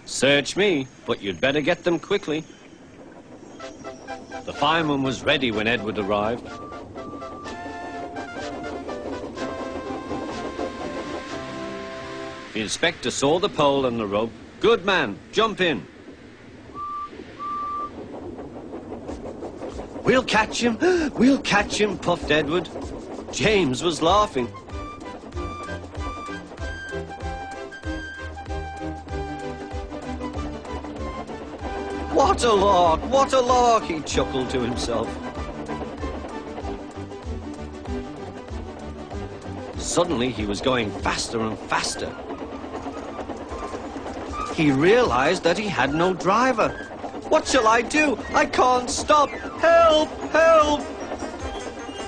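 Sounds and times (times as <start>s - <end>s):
steam engine hissing and puffing: 0.0s - 52.0s
wheels clattering on rails: 0.0s - 52.0s
steam whistle toots: 5.4s - 12.6s, 16.8s - 18.0s.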